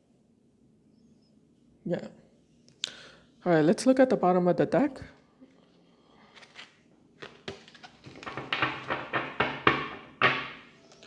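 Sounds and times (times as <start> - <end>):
cards rustling and tapping: 6.3 - 11.0.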